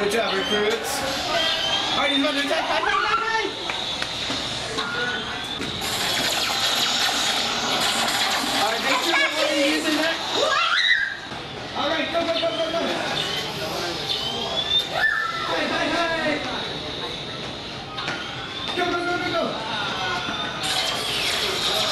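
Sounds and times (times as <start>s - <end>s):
noisy electronic blast: 5.7s - 9.6s
electronic rising zaps: 5.8s - 9.5s
swooping electronic zap: 5.8s - 9.5s
voices: 8.5s - 21.9s.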